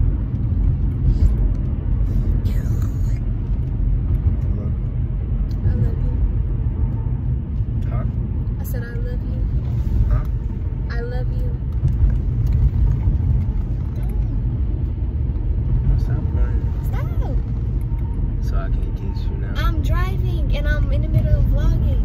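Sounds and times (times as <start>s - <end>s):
car engine and tyres rumble: 0.0s - 22.0s.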